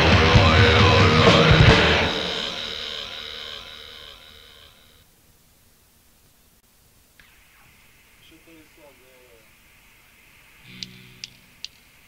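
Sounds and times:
metal song final chord: 0.0 - 4.7
faint hiss: 3.7 - 12.0.

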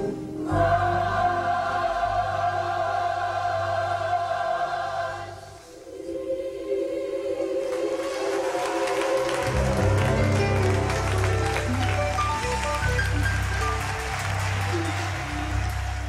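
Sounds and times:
organ runs: 9.2 - 16.0.

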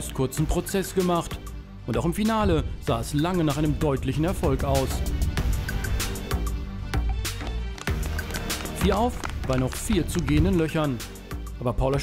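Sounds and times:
narrator speaking: 0.0 - 5.2, 8.6 - 12.0
background music with steady beat: 0.0 - 12.0.

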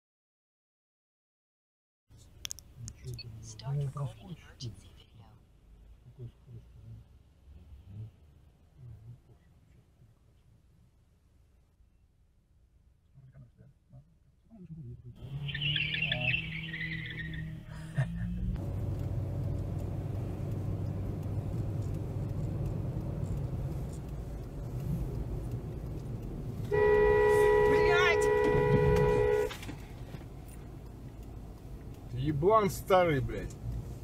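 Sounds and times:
car driving noise: 15.2 - 34.0
two-tone car horn: 26.6 - 29.8.

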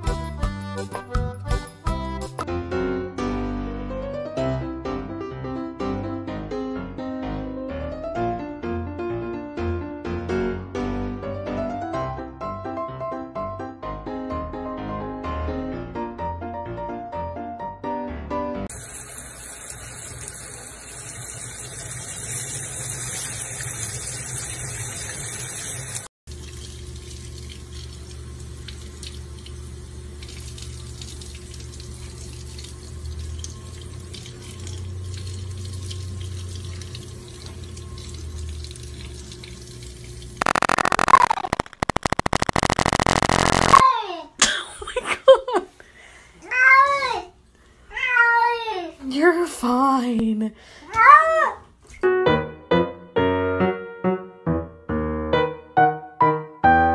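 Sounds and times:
loud harsh noise: 40.4 - 43.8
low hum: 40.4 - 43.8.

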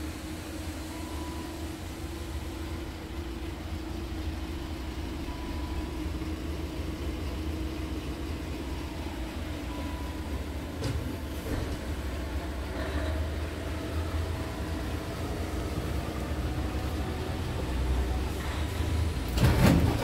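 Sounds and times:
diesel truck engine idling: 0.0 - 20.0.

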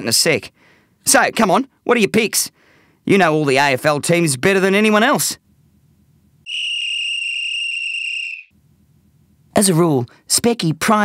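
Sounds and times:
high-pitched whistle tone: 6.4 - 8.5
audiobook narration: 9.5 - 11.0.

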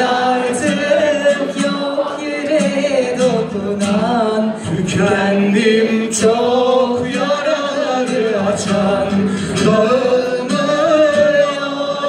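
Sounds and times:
acoustic guitar accompaniment: 0.0 - 12.0.

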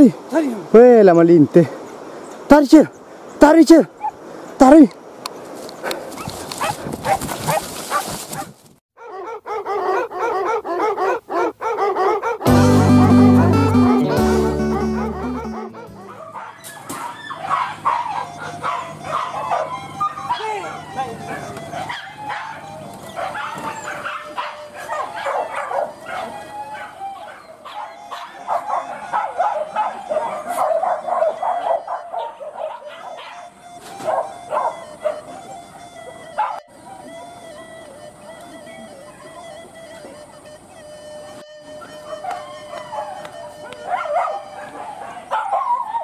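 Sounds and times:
dogs barking: 4.0 - 4.2, 5.8 - 38.0, 38.6 - 40.3, 41.8 - 46.0.

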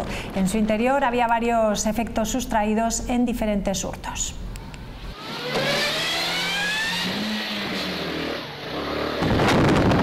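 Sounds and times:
engine accelerating: 5.0 - 10.0.

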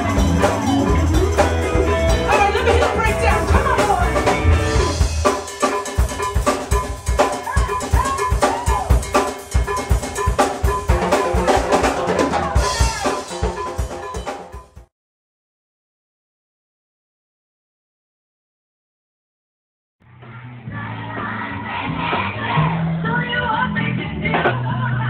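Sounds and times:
electric guitar with bent notes: 0.0 - 14.3
congas timbales and drum kit: 0.0 - 14.9
fast percussion hits: 0.0 - 14.9.

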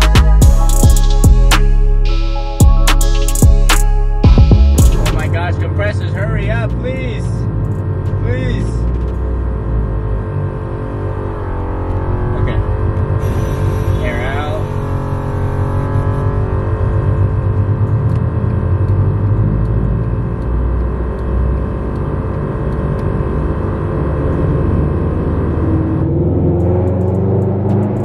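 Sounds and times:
car engine at low revs: 4.3 - 28.0
exhaust crackles and pops: 4.8 - 28.0.

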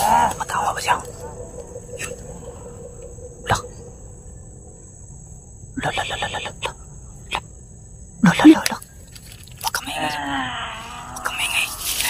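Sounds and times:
high insect drone: 0.0 - 12.0.

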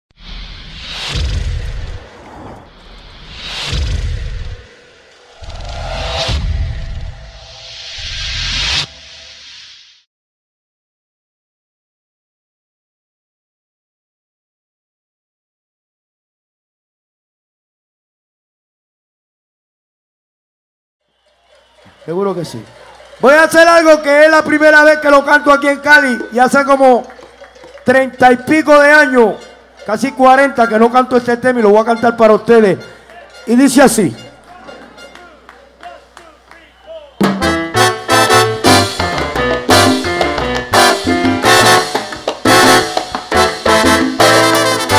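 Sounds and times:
noisy whoosh: 0.1 - 10.1
pulsing bass line: 5.3 - 9.2
trumpets playing: 21.1 - 44.9
live salsa band: 37.2 - 44.9.

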